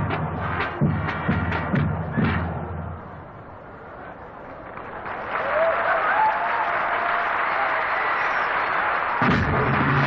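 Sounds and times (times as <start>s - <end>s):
crowd cheering: 2.9s - 10.0s
stadium crowd applauding: 3.8s - 10.0s.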